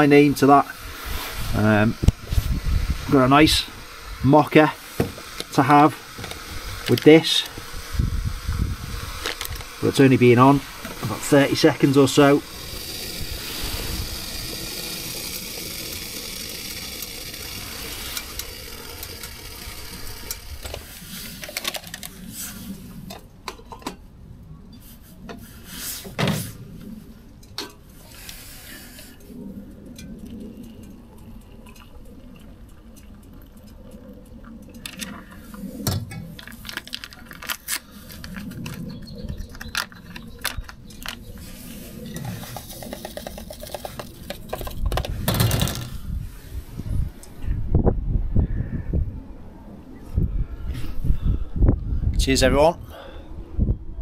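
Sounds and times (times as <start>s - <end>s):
gas stove hissing: 0.0s - 23.1s
water boiling in pot: 0.0s - 23.1s, 27.3s - 39.8s.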